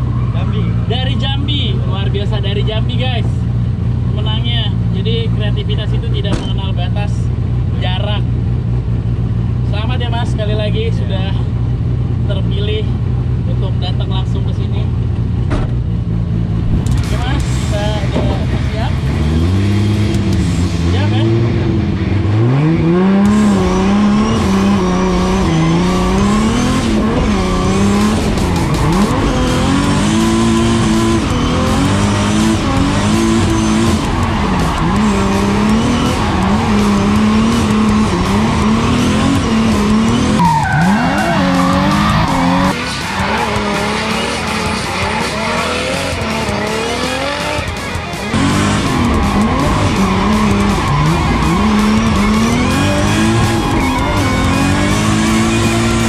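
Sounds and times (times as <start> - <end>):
car engine revving: 0.0 - 56.0
tyre squeal: 23.4 - 46.6, 48.4 - 56.0.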